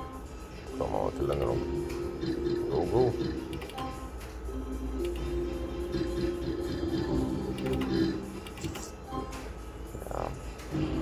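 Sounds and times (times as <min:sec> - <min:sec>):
electronic slot machine music: 0:00.0 - 0:11.0
slot reels spinning: 0:07.4 - 0:08.9.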